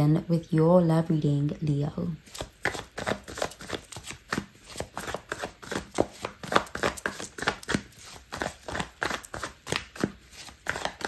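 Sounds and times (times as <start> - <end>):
cards being shuffled: 2.2 - 11.0.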